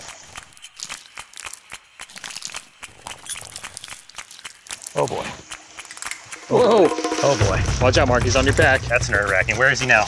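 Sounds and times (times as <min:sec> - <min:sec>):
leaves rustling and crackling: 0:00.0 - 0:07.6.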